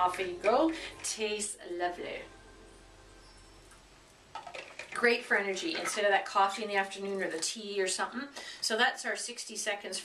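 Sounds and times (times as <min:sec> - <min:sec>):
water bottle and lid handling: 0:04.3 - 0:05.0.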